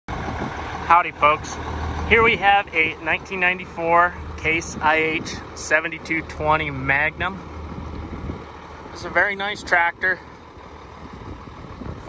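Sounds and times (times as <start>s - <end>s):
tractor diesel engine idling: 0.1s - 12.0s.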